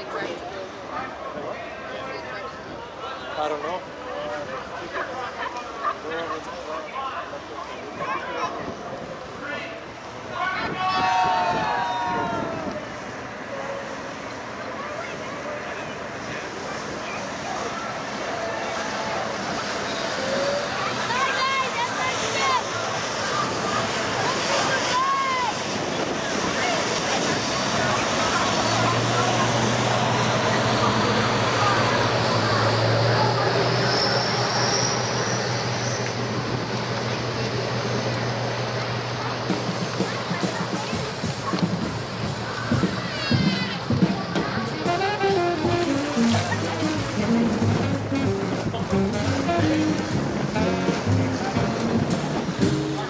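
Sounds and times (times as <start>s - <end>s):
passengers' voices: 0.0s - 53.0s
rushing water: 0.0s - 53.0s
wind: 0.0s - 53.0s.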